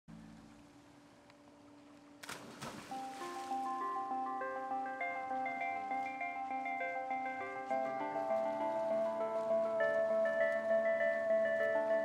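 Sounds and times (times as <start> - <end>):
marimba melody: 2.9 - 12.0.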